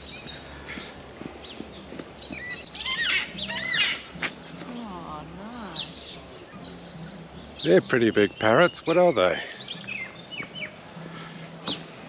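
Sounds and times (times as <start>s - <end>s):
parrots calling: 2.4s - 4.2s.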